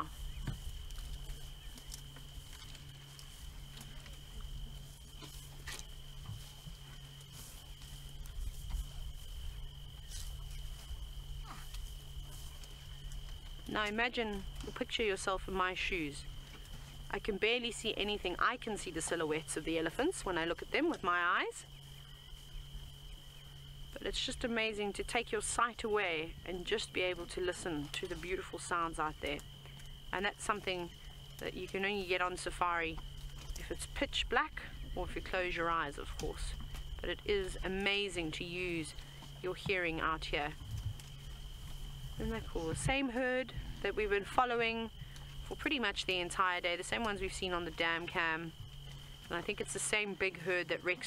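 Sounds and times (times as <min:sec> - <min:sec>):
branches snapping and leaves rustling: 0:00.0 - 0:14.9, 0:33.0 - 0:33.8, 0:40.5 - 0:43.0.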